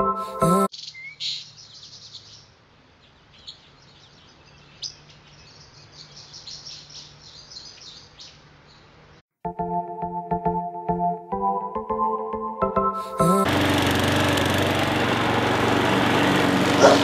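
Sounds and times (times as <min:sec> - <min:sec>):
music: 0:00.0 - 0:00.7, 0:09.4 - 0:13.5
birds chirping: 0:00.0 - 0:09.2, 0:15.8 - 0:17.0.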